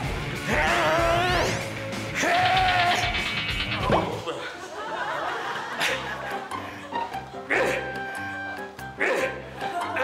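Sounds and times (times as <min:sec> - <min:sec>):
background music with bass line: 0:00.0 - 0:04.3.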